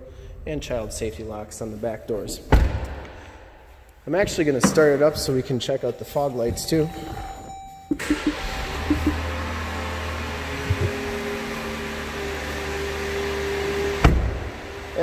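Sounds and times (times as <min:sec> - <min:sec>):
held tone: 0:05.9 - 0:09.2
car engine starting and idling: 0:07.9 - 0:15.0
car door shutting: 0:14.0 - 0:14.4.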